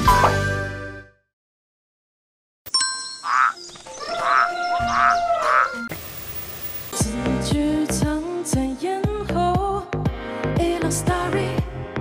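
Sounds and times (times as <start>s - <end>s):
held chime-like tones: 2.7s - 4.0s
cartoon croaking: 3.2s - 5.9s
steady hiss: 5.9s - 7.0s.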